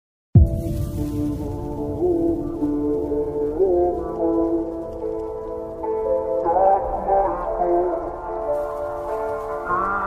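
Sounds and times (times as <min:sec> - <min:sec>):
deep hit: 0:00.4 - 0:03.0.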